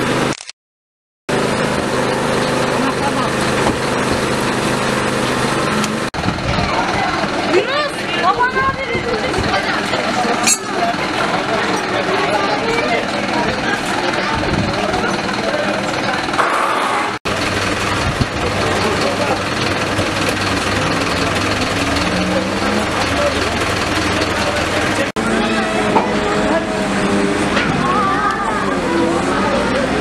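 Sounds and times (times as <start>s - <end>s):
street noise: 0.0s - 0.5s, 1.3s - 30.0s
truck engine idling: 1.3s - 30.0s
people talking: 2.6s - 4.0s, 6.2s - 16.4s, 17.8s - 30.0s.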